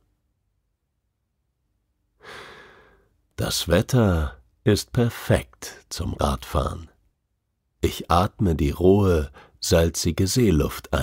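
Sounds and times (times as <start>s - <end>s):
man breathing in: 2.2s - 3.1s.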